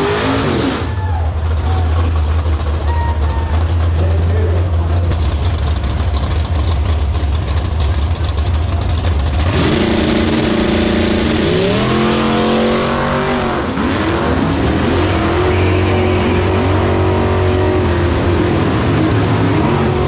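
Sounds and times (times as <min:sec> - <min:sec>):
drag car engines revving: 0:00.0 - 0:20.0.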